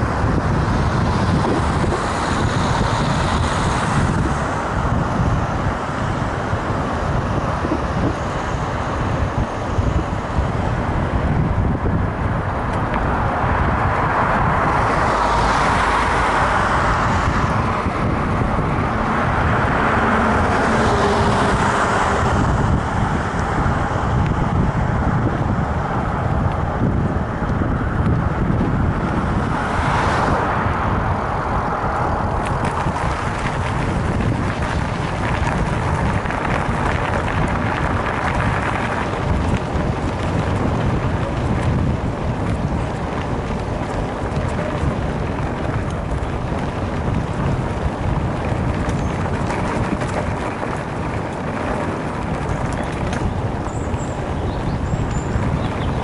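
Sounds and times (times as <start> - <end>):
bike tyres rolling on asphalt: 0.0 - 56.0
cars passing: 0.0 - 56.0
wind rushing over microphone: 0.0 - 56.0.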